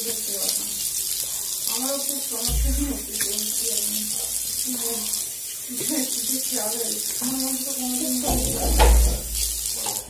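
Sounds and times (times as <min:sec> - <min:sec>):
tap water running into sink: 0:00.0 - 0:10.0.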